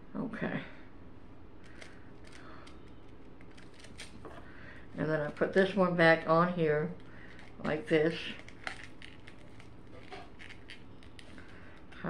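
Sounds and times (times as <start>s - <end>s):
earring and card clicking: 7.0s - 12.0s.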